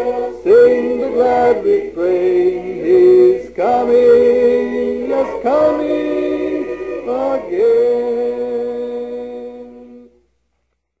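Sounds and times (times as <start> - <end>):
voices singing in harmony: 0.0 - 10.3.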